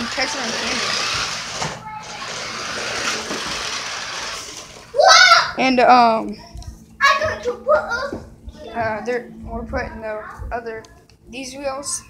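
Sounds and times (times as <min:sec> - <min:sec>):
toy truck motor whirring: 0:00.0 - 0:05.0
tyres rolling on hard floor: 0:00.0 - 0:05.0.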